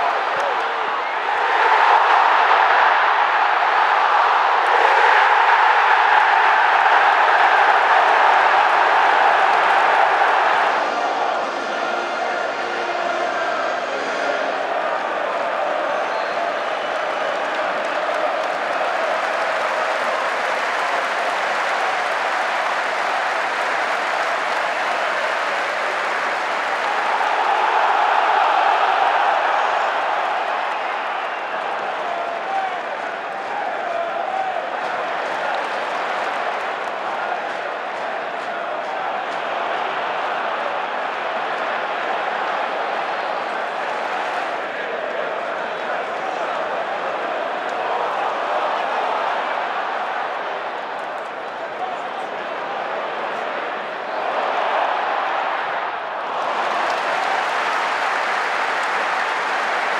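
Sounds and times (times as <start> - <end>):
crowd clapping: 0.0 - 11.8, 14.4 - 59.9
crowd voices: 0.0 - 59.9.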